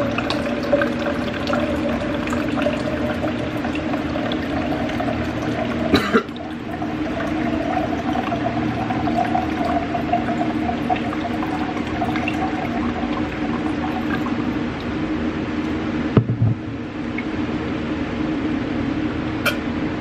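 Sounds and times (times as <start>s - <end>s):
water pouring into plastic cup: 0.0s - 14.9s.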